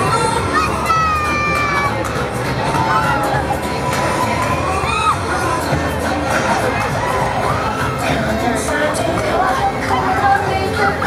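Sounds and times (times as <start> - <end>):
riders screaming and shouting: 0.0 - 11.0.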